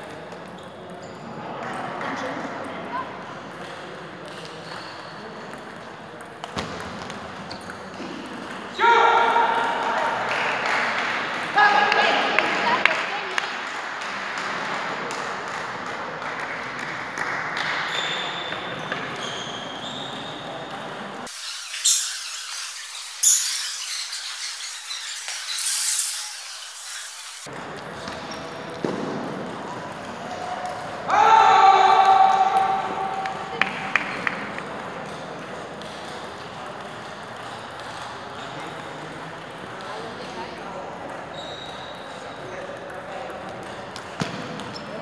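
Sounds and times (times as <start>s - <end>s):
voices echoing in hall: 0.0s - 45.0s.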